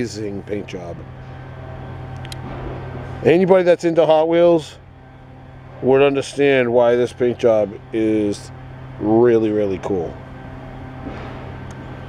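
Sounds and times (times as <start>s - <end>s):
low background hum: 0.0s - 12.0s.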